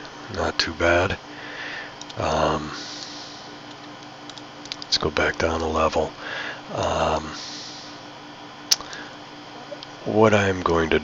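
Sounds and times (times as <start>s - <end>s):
faint background hum: 0.0s - 11.0s
computer mouse clicks: 2.0s - 2.2s.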